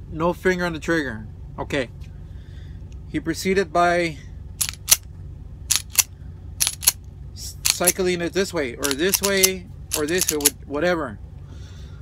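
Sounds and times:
pistol slide racking clicks: 4.6s - 5.0s, 5.7s - 7.0s, 7.6s - 8.0s, 8.8s - 10.6s.

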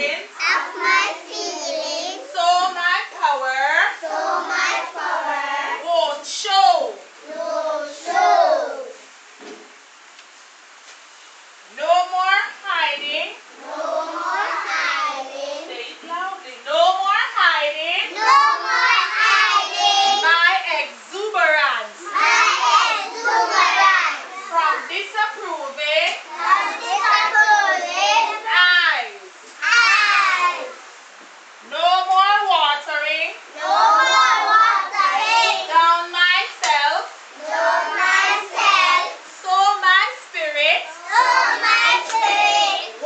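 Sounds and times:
young children singing: 0.4s - 2.4s, 4.0s - 5.9s, 7.2s - 9.0s, 13.6s - 15.8s, 18.1s - 20.4s, 22.0s - 24.6s, 26.3s - 28.5s, 29.6s - 30.8s, 33.6s - 35.8s, 37.4s - 39.2s, 40.9s - 43.0s.

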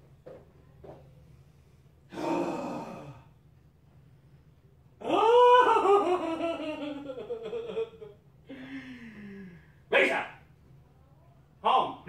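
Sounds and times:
man wailing moan: 2.1s - 3.3s, 5.0s - 6.4s.

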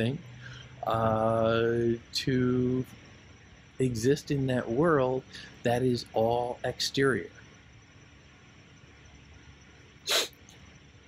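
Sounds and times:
sharp sniff: 10.1s - 10.4s.

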